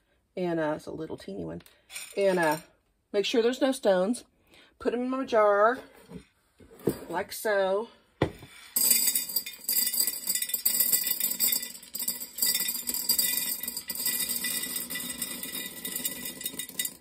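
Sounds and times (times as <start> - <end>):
beans pouring into glass jar: 8.5 - 17.0.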